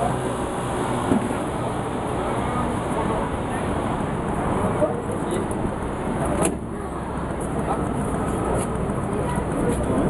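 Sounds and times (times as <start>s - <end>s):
outdoor voices: 0.0s - 10.0s.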